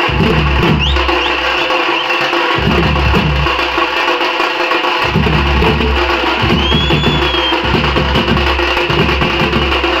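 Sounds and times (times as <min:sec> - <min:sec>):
bass drums beating: 0:00.0 - 0:01.7, 0:02.6 - 0:03.9, 0:05.0 - 0:10.0
side drums beaten with sticks: 0:00.0 - 0:10.0.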